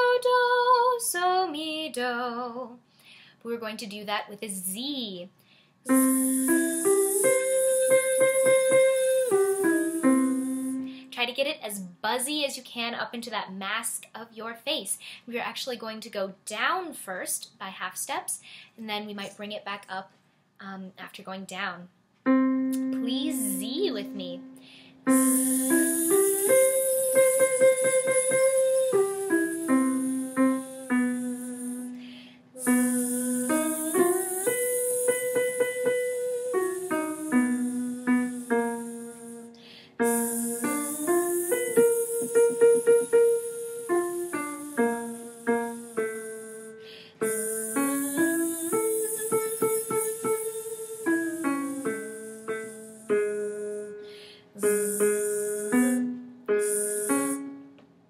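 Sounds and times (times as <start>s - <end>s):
piano playing notes: 5.9s - 11.1s, 22.3s - 57.8s
woman singing buzzing arpeggio: 5.9s - 11.1s, 22.8s - 54.0s, 54.6s - 57.4s.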